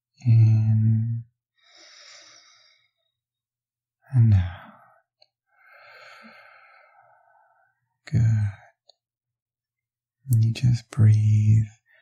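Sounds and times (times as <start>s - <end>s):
man breathing slowly: 1.5s - 3.2s, 4.4s - 8.8s.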